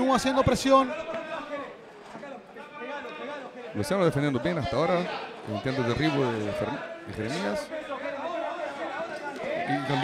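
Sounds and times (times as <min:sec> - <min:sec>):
crowd chatter and calls: 0:00.0 - 0:10.0.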